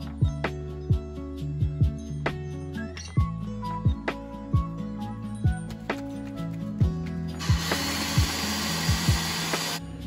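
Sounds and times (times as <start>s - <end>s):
background music with steady beat: 0.0s - 10.0s
personal blender running: 7.4s - 9.8s.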